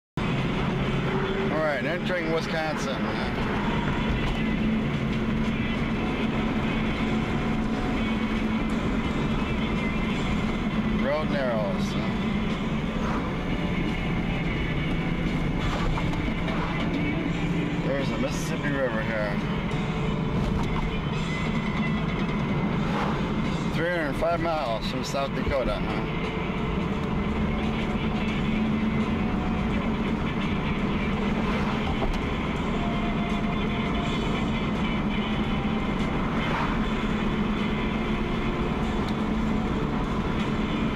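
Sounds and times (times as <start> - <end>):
car engine and road hum: 0.2 - 40.9.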